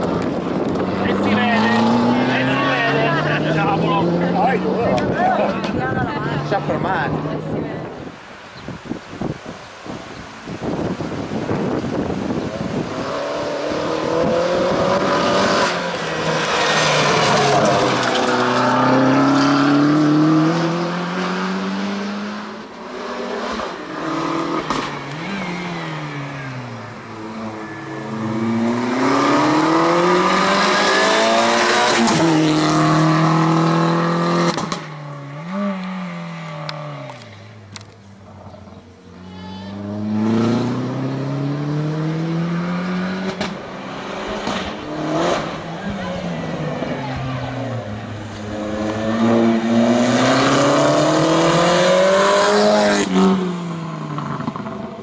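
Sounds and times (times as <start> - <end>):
car engine revving: 0.0 - 7.6, 11.8 - 55.0.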